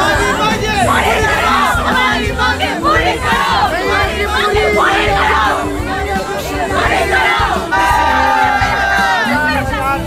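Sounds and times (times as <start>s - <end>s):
crowd shouting and cheering: 0.0s - 10.0s
music with low beat: 0.0s - 10.0s.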